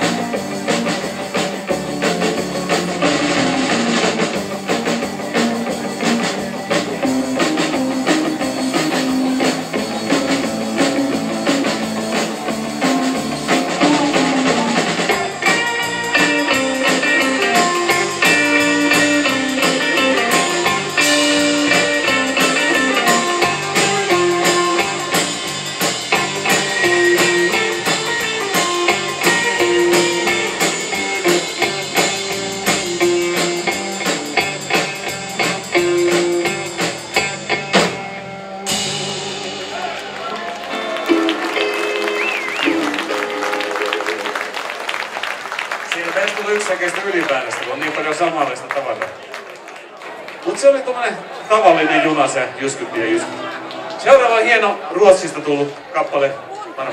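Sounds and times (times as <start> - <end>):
live instrumental guitar band: 0.0 - 56.9
audience applause: 39.4 - 56.9.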